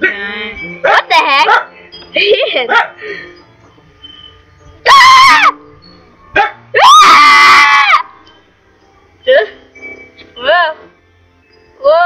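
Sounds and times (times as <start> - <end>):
young person shrieking playfully: 4.8 - 5.6, 6.8 - 8.1.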